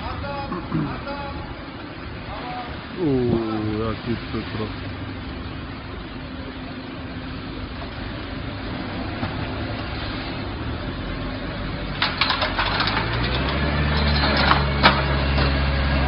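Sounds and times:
diesel truck engine running: 0.0s - 16.0s
street noise: 0.0s - 16.0s.

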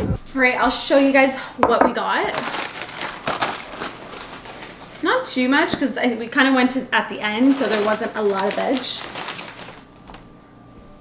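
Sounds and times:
canvas bag rustling: 2.3s - 5.1s, 7.4s - 9.9s.

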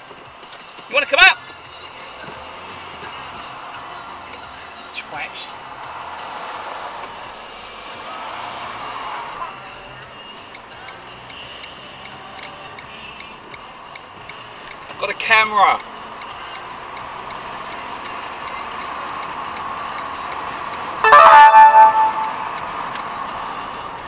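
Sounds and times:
light evenly spaced ticks: 10.2s - 15.0s, 15.7s - 20.9s.

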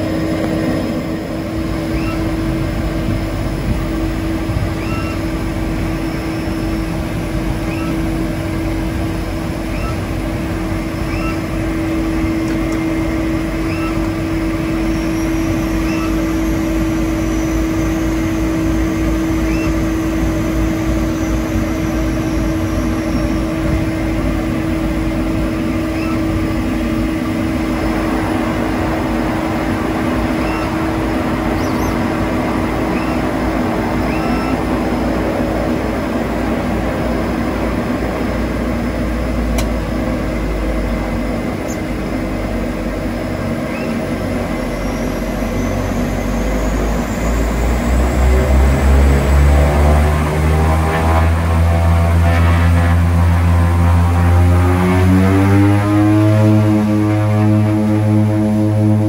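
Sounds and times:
turboprop engines droning: 0.0s - 59.0s.

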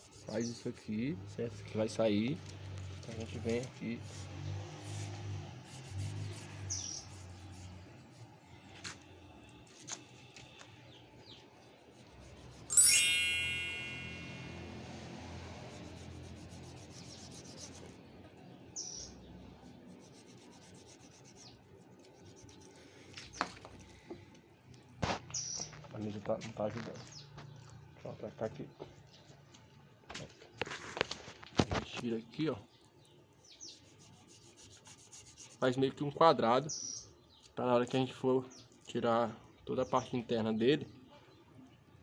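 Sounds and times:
knife scraping pig skin: 4.0s - 8.3s, 11.8s - 12.7s, 15.6s - 18.0s, 19.9s - 22.8s
bird chirps: 12.7s - 14.4s.

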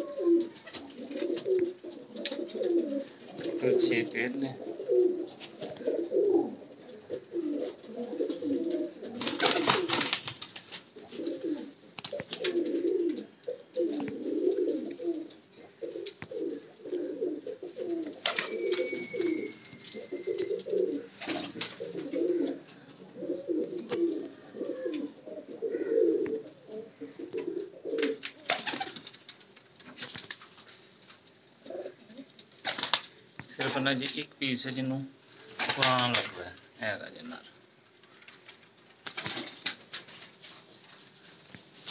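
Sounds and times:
pigeons cooing: 0.0s - 10.2s, 10.9s - 29.0s, 31.6s - 32.4s.

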